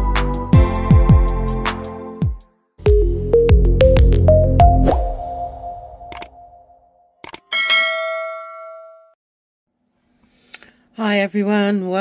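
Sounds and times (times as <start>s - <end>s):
bright ding: 7.5s - 9.2s.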